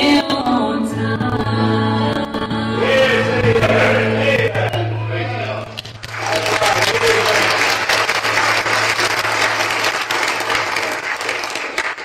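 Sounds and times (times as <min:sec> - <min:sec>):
congregation applauding: 0:05.7 - 0:12.0.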